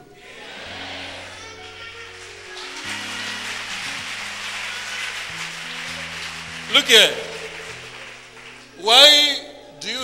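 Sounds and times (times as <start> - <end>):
low keyboard chords: 0.0 - 10.0.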